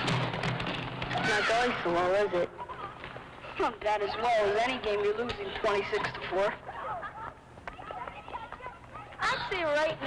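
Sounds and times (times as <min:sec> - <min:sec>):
scattered voices in gym: 0:00.3 - 0:10.0.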